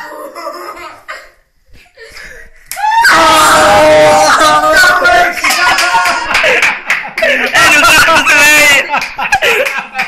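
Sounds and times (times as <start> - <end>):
children laughing: 0.0 - 2.3, 3.6 - 10.0.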